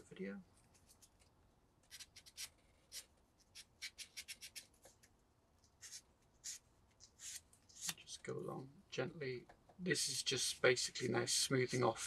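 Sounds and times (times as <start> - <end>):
sandpaper scratching plastic: 1.9 - 4.8.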